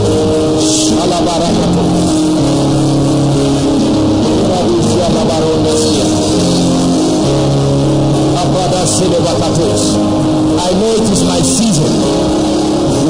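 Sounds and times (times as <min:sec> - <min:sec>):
slow keyboard chords: 0:00.0 - 0:13.0
person speaking: 0:00.6 - 0:02.1, 0:03.9 - 0:06.9, 0:08.3 - 0:12.3.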